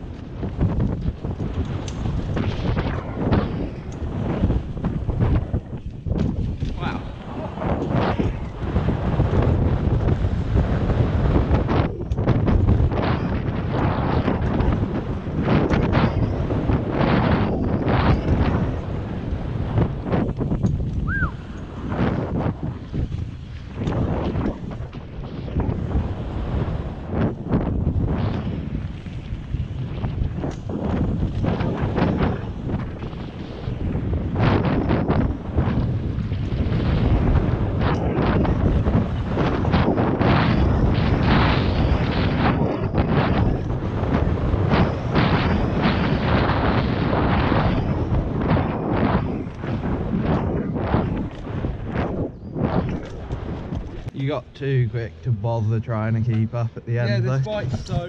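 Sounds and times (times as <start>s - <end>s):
bike knocking and rattling: 0.0s - 7.0s, 20.1s - 21.8s
bike tyres on dirt: 0.0s - 54.1s
wind rushing over microphone: 0.0s - 58.0s.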